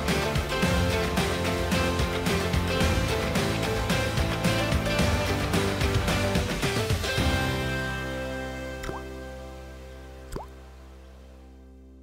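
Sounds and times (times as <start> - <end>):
water drop plopping: 8.8 - 9.1, 10.3 - 10.6.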